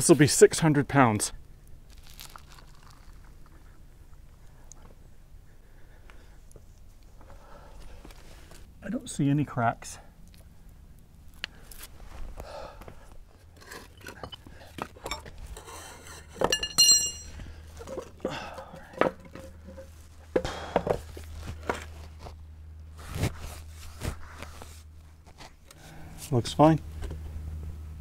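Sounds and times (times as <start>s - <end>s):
sharp ringing clink: 16.5s - 17.4s.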